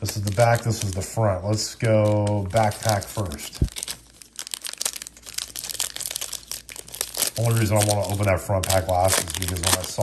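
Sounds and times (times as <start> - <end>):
foil wrapper crinkling and tearing: 0.0 - 10.0.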